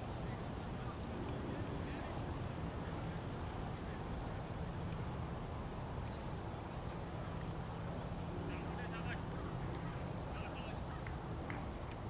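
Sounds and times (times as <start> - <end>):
low rumble and hiss: 0.0 - 12.0
faint clicks: 11.0 - 12.0.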